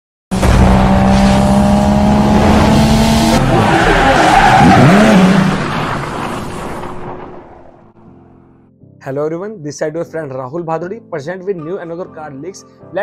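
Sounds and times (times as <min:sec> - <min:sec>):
racing car engine high note: 0:00.4 - 0:05.6
tyres screeching: 0:03.4 - 0:07.0.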